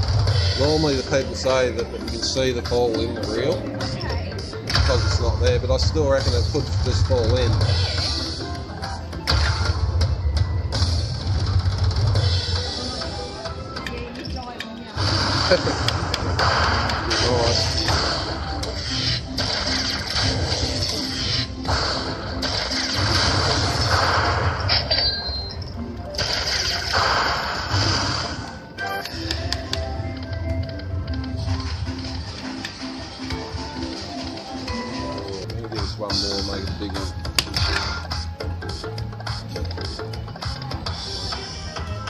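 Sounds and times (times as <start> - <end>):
slot machine music and jingles: 0.0 - 14.3, 15.0 - 42.0.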